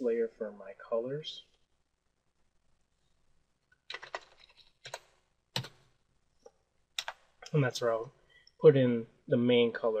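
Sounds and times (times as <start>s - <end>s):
computer keyboard keystrokes: 3.9s - 5.8s, 7.0s - 7.2s.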